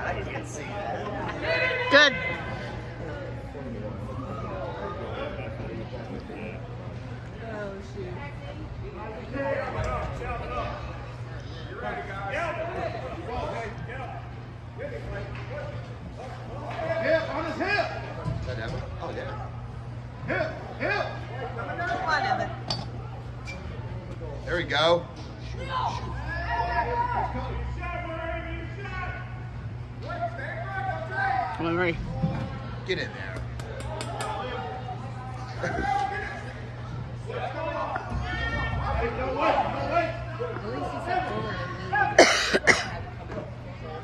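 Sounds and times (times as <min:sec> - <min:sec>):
people calling and shouting: 0:00.0 - 0:44.0
steady low hum: 0:00.0 - 0:44.0.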